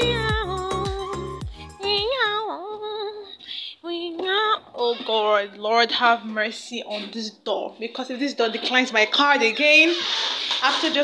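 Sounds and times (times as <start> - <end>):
woman singing: 0.0 - 6.4.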